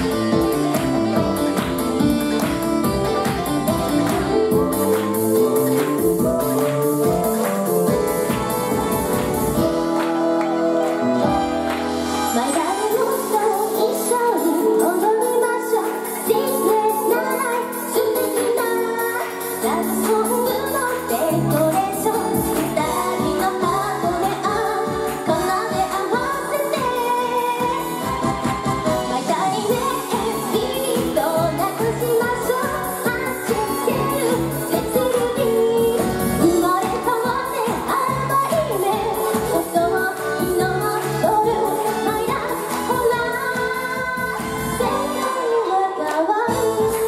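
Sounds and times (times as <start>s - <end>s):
fast pop music: 0.0s - 47.0s
woman singing into microphone: 12.2s - 47.0s.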